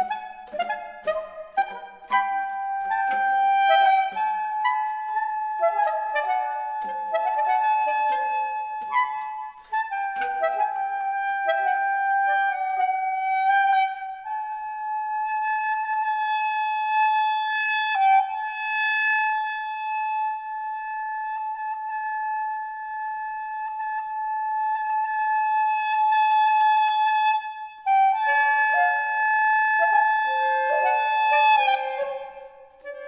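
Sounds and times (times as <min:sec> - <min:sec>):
saxophone quartet playing: 0:00.0 - 0:09.4.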